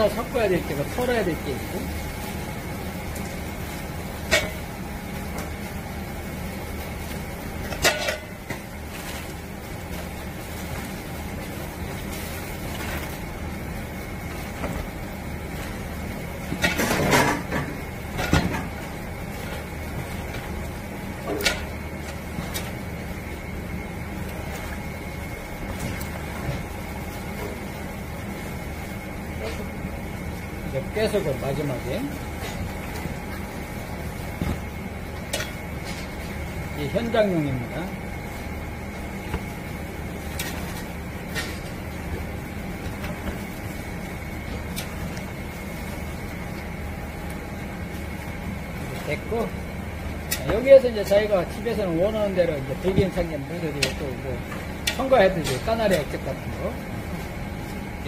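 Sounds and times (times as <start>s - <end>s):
steady background hum: 0.0s - 58.0s.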